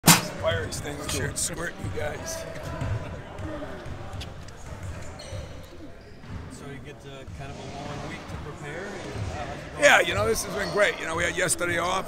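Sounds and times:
basketballs bouncing on wood floor: 1.8s - 5.6s
sharp shoe squeaks: 5.0s - 6.3s.

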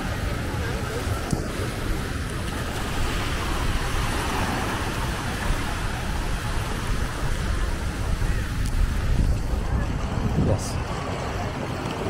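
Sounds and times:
small waves washing onto sand: 0.0s - 12.0s
wind buffeting microphone: 0.0s - 12.0s.

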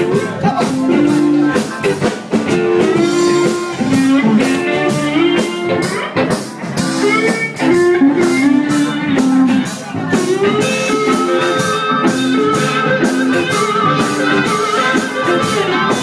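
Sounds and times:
blues band playing: 0.0s - 16.0s
drum kit beat: 0.0s - 16.0s
electric guitar bent notes: 0.0s - 16.0s.

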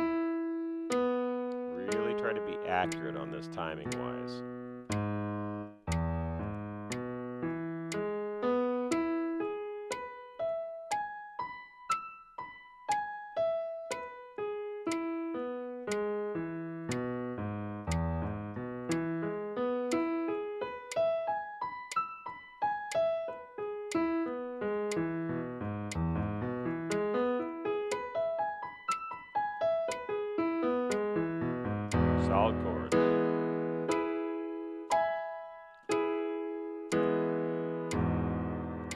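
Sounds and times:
digital piano arpeggios: 0.0s - 38.9s.

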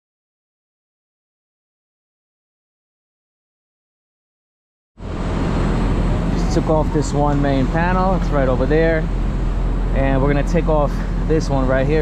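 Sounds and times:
city traffic: 5.0s - 12.0s
low mechanical hum of outdoor units: 5.0s - 12.0s.

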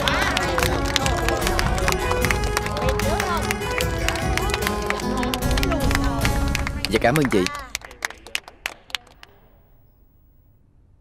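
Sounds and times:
sparse applause: 0.0s - 9.5s.

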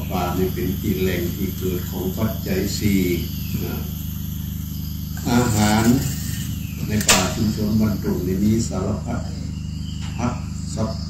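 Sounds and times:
man speaking through microphone: 0.0s - 4.0s, 5.2s - 6.1s, 6.8s - 9.6s, 10.2s - 11.0s
steady low hum: 0.0s - 11.0s.

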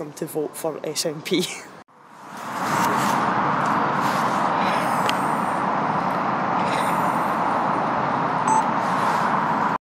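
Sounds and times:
street traffic going by: 0.0s - 9.8s
short beep: 8.5s - 8.7s.

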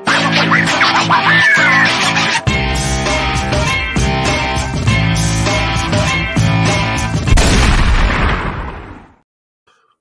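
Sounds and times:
guitar music: 0.0s - 7.3s
loud gunshot sound effect: 7.3s - 9.2s.

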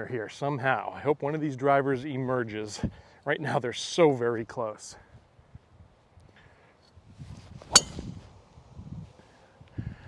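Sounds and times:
golf driver striking ball: 7.7s - 8.1s.

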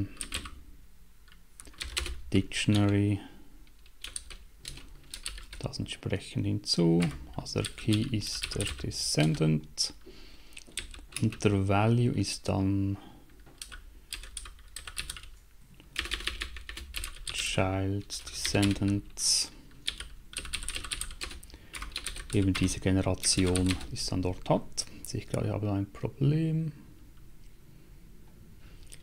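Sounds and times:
typing on computer keyboard: 0.2s - 0.6s, 1.3s - 2.2s, 3.8s - 5.6s, 10.6s - 11.4s, 13.4s - 15.4s, 16.0s - 17.4s, 19.7s - 22.8s.

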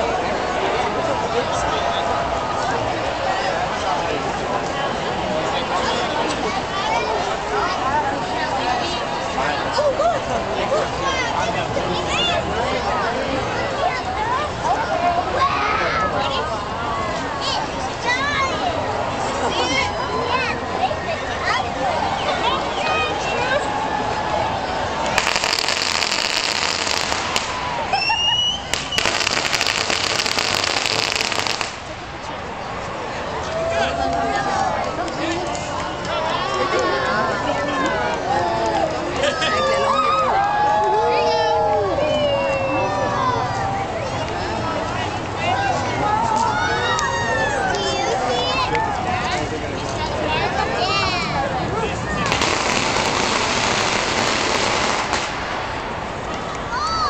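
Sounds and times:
crowd voices: 0.0s - 57.0s
firecrackers popping: 25.0s - 32.2s, 52.2s - 56.1s.

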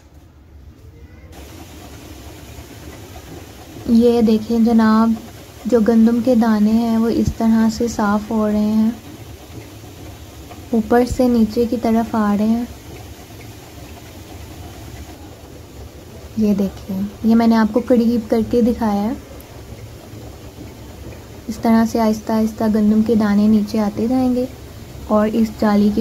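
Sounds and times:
machine motor hum: 1.3s - 26.0s.

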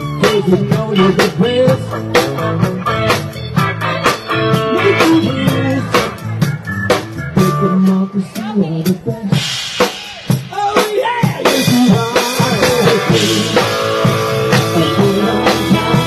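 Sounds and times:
drum kit beat: 0.0s - 16.0s
electric guitar: 0.0s - 16.0s.

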